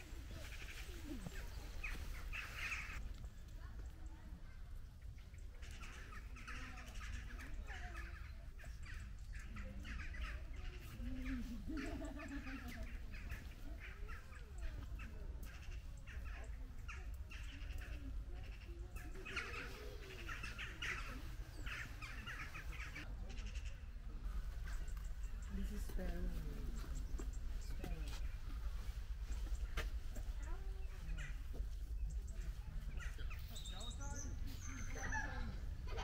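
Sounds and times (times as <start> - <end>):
birds chattering and calling: 0.0 - 36.0.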